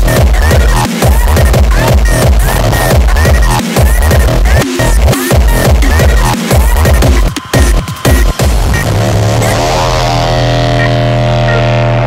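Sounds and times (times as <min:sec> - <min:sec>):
loud low synth note: 0:08.4 - 0:12.0.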